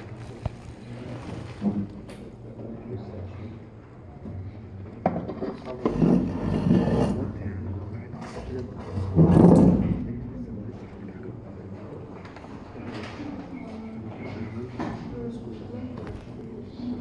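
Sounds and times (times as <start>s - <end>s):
muffled talking in a room: 0.0s - 17.0s.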